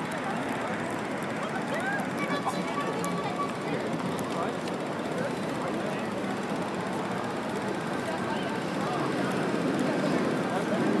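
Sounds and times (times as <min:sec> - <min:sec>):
many people talking: 0:00.0 - 0:11.0
traffic: 0:00.0 - 0:11.0.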